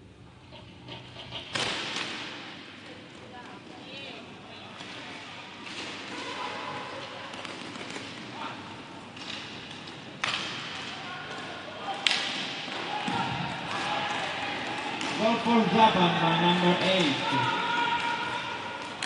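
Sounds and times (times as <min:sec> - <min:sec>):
stick and puck knocks: 0:09.2 - 0:10.9, 0:12.0 - 0:12.6.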